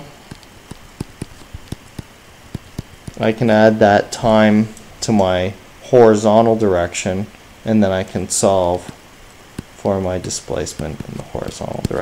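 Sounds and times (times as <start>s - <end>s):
stylus tapping on tablet screen: 0.3s - 3.3s, 8.8s - 12.0s.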